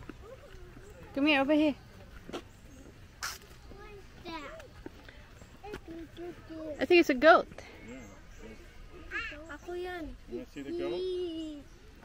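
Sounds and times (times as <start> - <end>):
faint distant voices: 0.0 - 12.0
brief hiss: 3.2 - 3.5.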